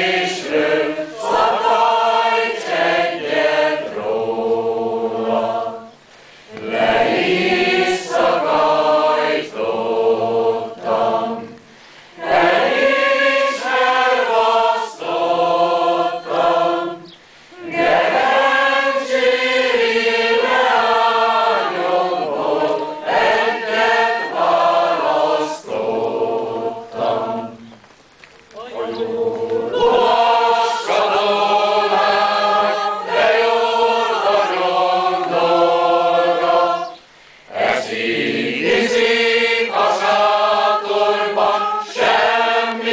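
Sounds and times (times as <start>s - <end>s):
choir singing a cappella: 0.0s - 27.8s, 28.6s - 42.9s.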